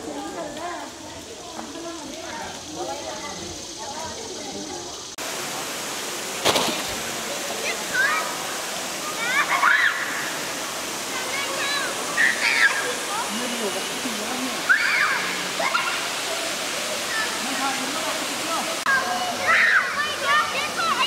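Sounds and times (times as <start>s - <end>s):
running creek water: 0.0s - 21.0s
people and children calling out: 7.4s - 21.0s.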